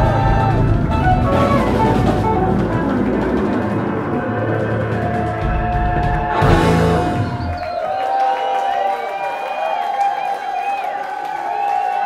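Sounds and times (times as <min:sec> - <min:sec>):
rock band chord ringing: 0:00.0 - 0:07.6
audience cheering and whistling: 0:00.0 - 0:12.0.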